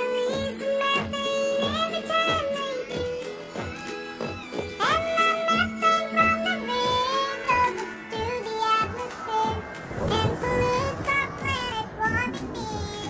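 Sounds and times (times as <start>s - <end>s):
backing music with steady beat: 0.0s - 13.0s
pitched-up child singing: 0.0s - 13.0s.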